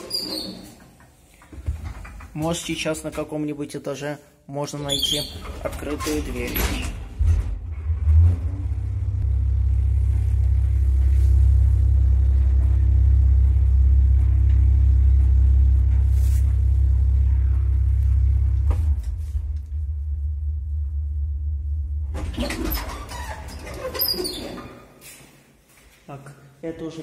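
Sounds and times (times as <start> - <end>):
elevator car rumbling: 5.4 - 24.6.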